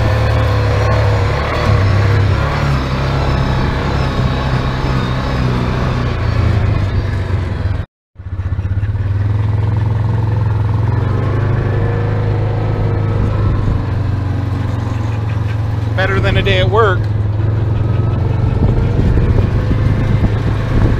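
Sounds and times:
utility vehicle engine droning: 0.0s - 20.9s.

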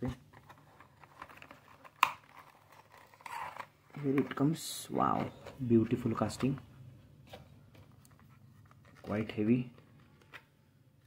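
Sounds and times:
cardboard and plastic rustling: 0.0s - 10.5s.

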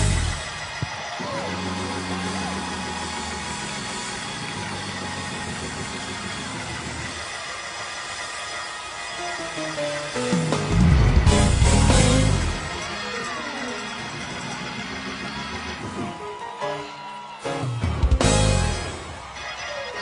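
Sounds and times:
held keyboard chords: 0.0s - 3.6s, 9.2s - 20.0s
heavy drums: 0.0s - 4.3s, 10.3s - 12.9s, 17.7s - 19.4s
gospel band playing: 9.4s - 20.0s.

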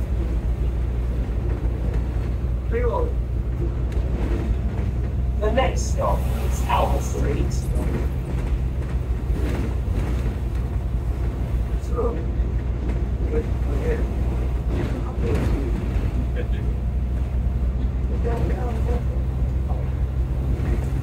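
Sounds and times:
bus diesel engine drone: 0.0s - 21.0s
faint passenger voices: 0.0s - 21.0s
road noise: 0.0s - 21.0s.

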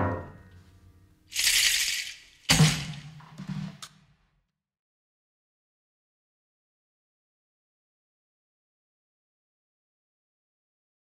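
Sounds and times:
grand piano chord: 0.0s - 1.0s
drum kit percussion: 1.3s - 4.0s
drum hit with cymbal: 2.5s - 3.9s.

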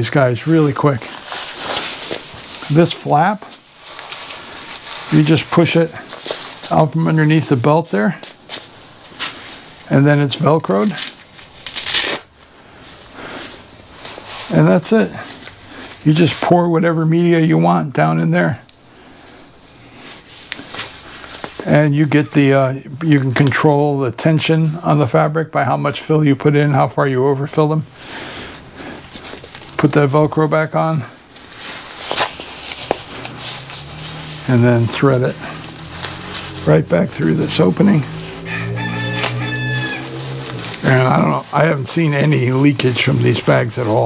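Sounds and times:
fabric rustling: 0.0s - 16.6s, 18.9s - 21.7s, 28.2s - 44.0s
velcro ripping open: 1.0s - 2.8s, 10.8s - 12.6s, 31.4s - 37.4s, 38.0s - 41.4s.

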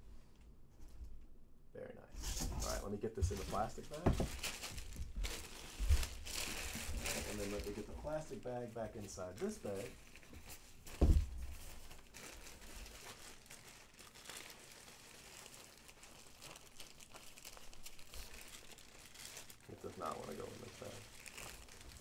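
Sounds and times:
plastic bag crinkling: 2.6s - 22.0s.

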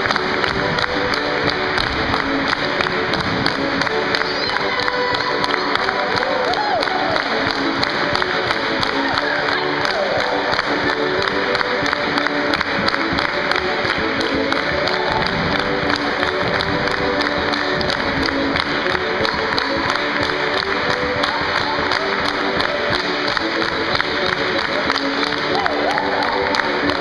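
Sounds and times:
folk dance music over loudspeakers: 0.0s - 27.0s
hands clapping along: 0.0s - 27.0s
cheering and shouts: 3.9s - 11.5s, 24.7s - 27.0s.

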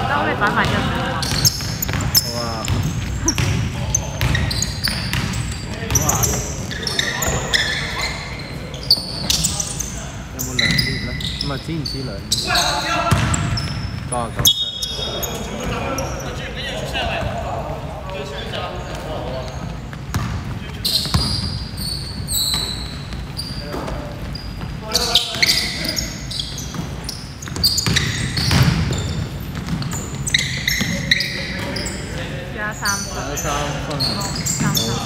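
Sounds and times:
players calling out: 0.0s - 35.0s
shoes squeaking on court: 0.1s - 35.0s
basketball bouncing: 0.4s - 7.6s, 13.0s - 14.5s, 19.9s - 25.6s, 26.4s - 31.8s.

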